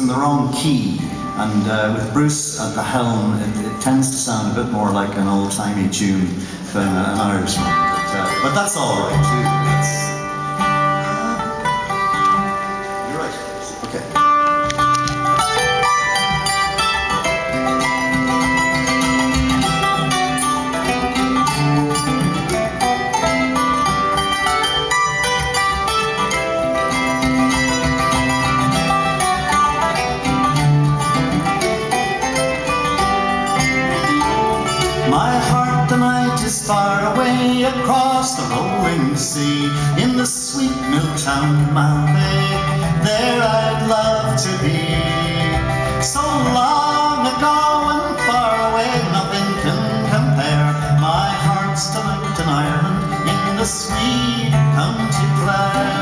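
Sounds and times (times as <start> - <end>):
strummed mandolin and bouzouki: 0.0 - 56.0
fiddle melody: 0.4 - 56.0.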